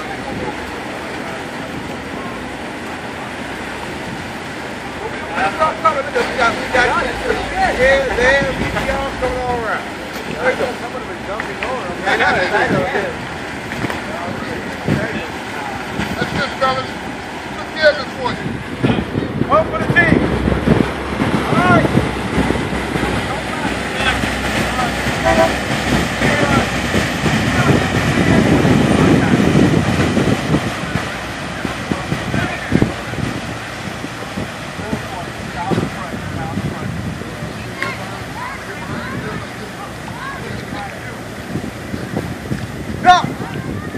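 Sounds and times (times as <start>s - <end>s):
boat engines idling: 0.0s - 43.9s
wake churning: 0.0s - 43.9s
wind on microphone: 18.2s - 43.9s.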